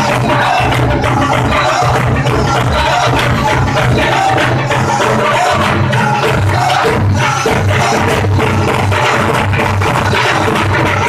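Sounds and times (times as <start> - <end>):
frame drums beating: 0.0 - 11.0
men chanting in chorus: 0.0 - 11.0.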